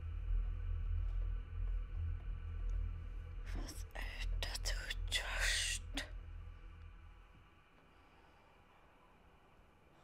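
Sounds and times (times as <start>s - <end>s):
low steady drone: 0.0s - 8.5s
person whispering: 3.5s - 6.1s.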